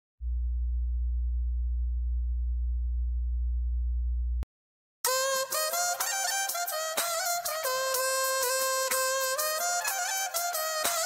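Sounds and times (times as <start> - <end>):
deep electronic tone: 0.2 - 4.4.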